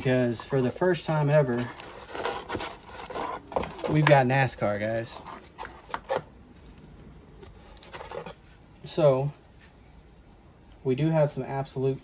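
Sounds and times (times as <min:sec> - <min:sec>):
cards tapping and rustling: 0:00.4 - 0:08.4.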